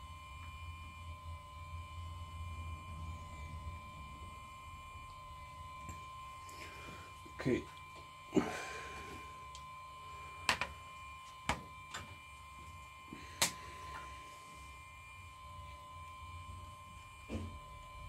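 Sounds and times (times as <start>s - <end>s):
faint high-pitched electrical tone: 0.0s - 18.0s.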